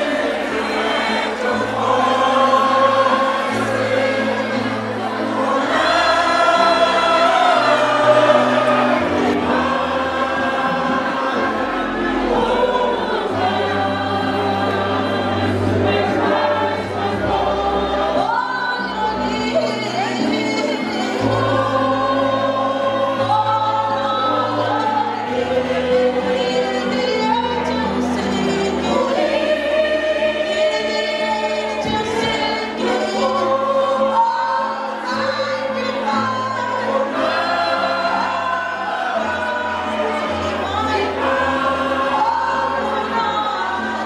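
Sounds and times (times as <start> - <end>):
choir singing gospel song: 0.0 - 44.0.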